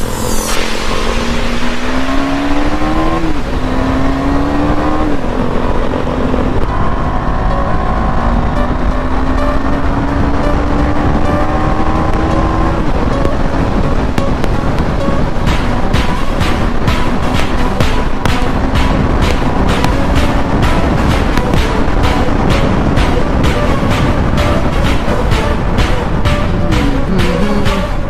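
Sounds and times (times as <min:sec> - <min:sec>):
motorcycle engine accelerating: 0:00.0 - 0:28.0
wind rush over microphone: 0:00.0 - 0:28.0.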